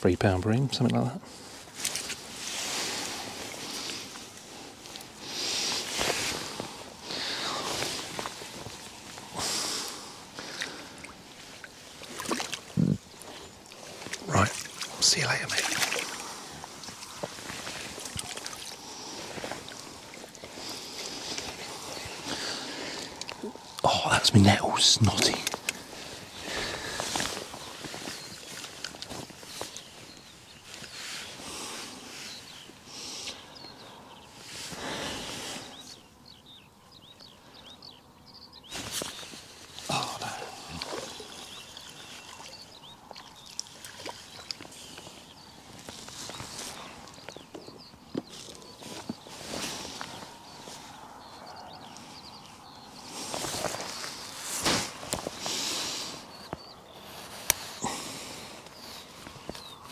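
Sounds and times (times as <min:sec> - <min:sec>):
outdoor background: 0:00.0 - 0:59.9
rustling and scuffing on grass: 0:01.3 - 0:09.4, 0:15.9 - 0:22.3, 0:25.8 - 0:32.8, 0:38.7 - 0:39.9, 0:43.8 - 0:51.0, 0:52.4 - 0:59.9.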